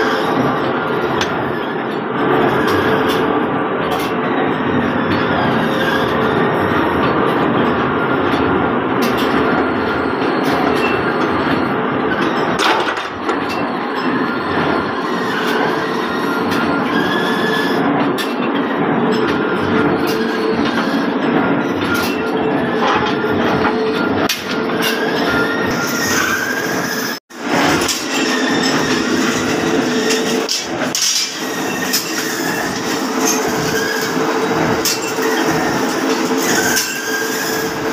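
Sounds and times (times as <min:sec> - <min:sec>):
steady machine hum: 0:00.0 - 0:37.9
roller chain clattering: 0:27.4 - 0:37.8.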